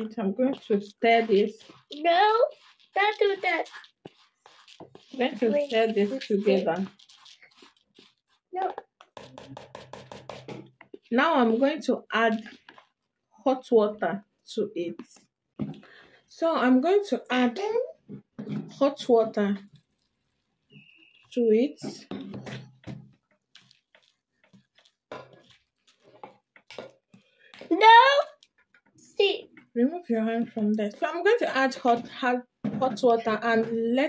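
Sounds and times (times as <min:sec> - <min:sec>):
metal spoon stirring oats in bowl: 0:00.0 - 0:16.0, 0:18.4 - 0:34.0.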